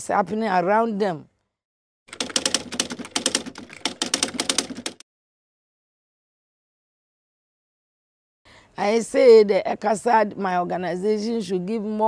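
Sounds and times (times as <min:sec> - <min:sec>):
keyboard typing clicks: 0:02.1 - 0:05.0.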